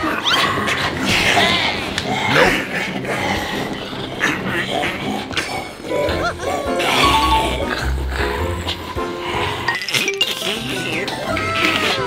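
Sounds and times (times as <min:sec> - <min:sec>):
man growling and snarling: 0:00.0 - 0:09.0.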